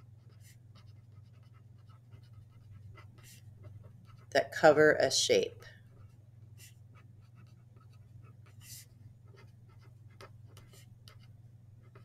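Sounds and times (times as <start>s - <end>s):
pen scratching on paper: 0.0s - 4.8s, 5.9s - 12.0s
steady low hum: 0.0s - 12.0s.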